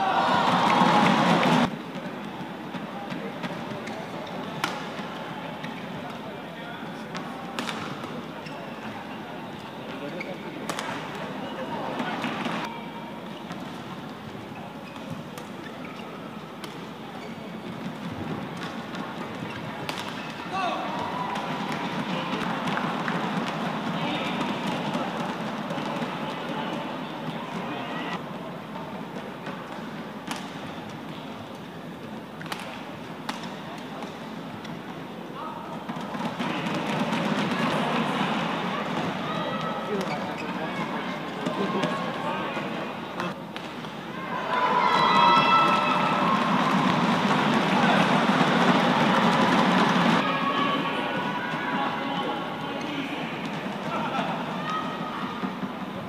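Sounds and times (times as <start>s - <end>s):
arena crowd noise: 0.0s - 56.0s
racket striking shuttlecock: 7.1s - 8.2s, 10.7s - 11.1s, 19.8s - 20.4s, 30.2s - 30.6s, 32.4s - 34.1s.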